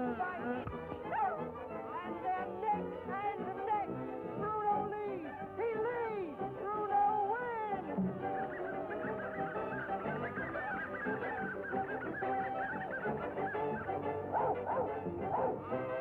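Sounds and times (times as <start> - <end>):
orchestral music: 5.4 - 16.0
puppies yipping: 8.1 - 15.8.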